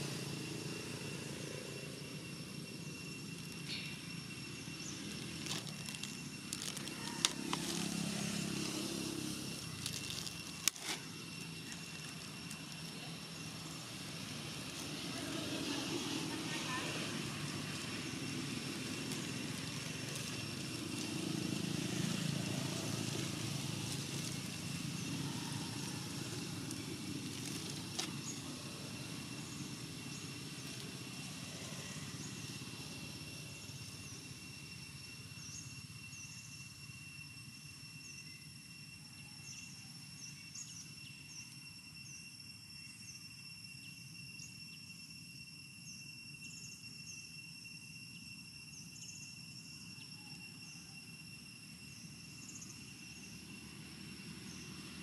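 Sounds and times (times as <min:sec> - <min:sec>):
steady high-pitched whine: 0:00.0 - 0:55.0
passing motor traffic: 0:05.4 - 0:11.8, 0:13.1 - 0:32.9.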